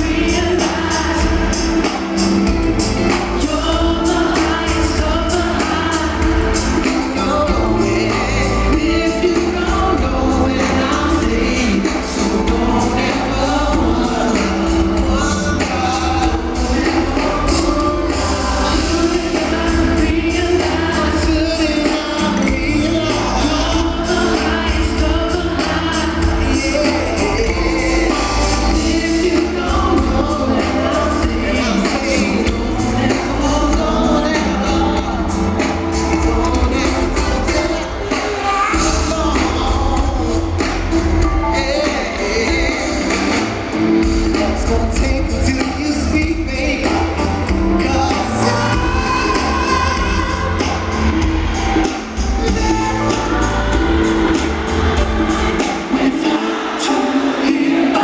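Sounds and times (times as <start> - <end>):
bass guitar: 0.0 - 55.8
voices singing together: 0.0 - 58.0.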